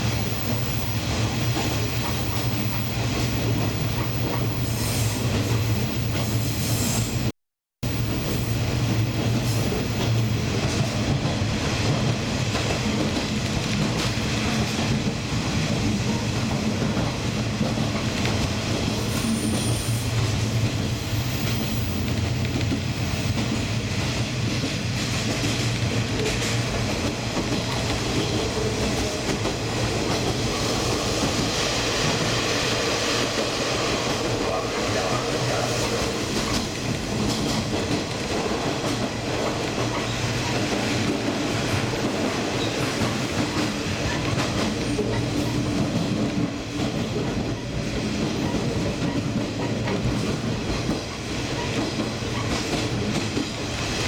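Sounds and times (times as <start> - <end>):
diesel train rumbling: 0.0 - 54.0.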